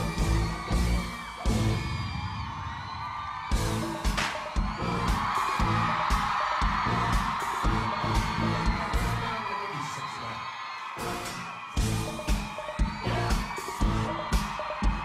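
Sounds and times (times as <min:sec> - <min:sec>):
audience cheering and whooping: 0:00.0 - 0:15.0
hip-hop track with heavy bass: 0:03.5 - 0:09.6.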